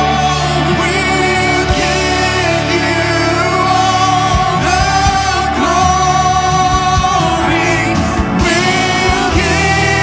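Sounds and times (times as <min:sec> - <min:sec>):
live worship band: 0:00.0 - 0:10.0
singers holding long notes: 0:00.0 - 0:10.0.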